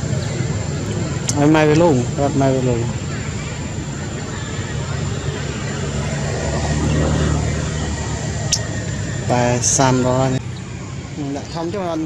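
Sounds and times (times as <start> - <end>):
passing engine hum: 0.0 - 12.0.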